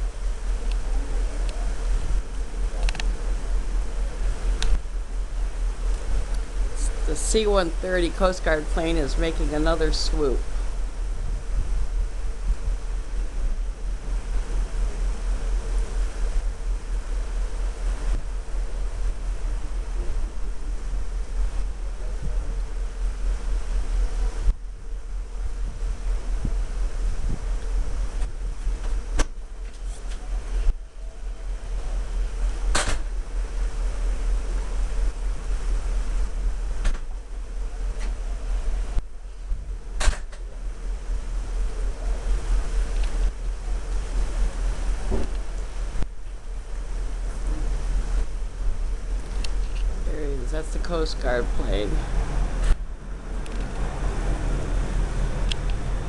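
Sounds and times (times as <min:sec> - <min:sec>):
faint steady hum: 0:00.0 - 0:56.0
wind buffeting microphone: 0:10.5 - 0:15.3, 0:25.8 - 0:28.8.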